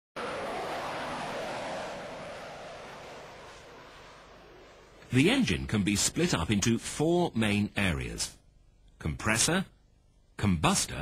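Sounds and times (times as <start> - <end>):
jet engine roar: 0.1 - 7.0.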